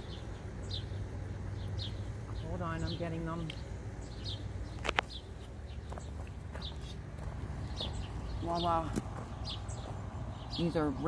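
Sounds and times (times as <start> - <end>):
low steady rumble: 0.0 - 11.0
small birds chirping: 0.0 - 11.0.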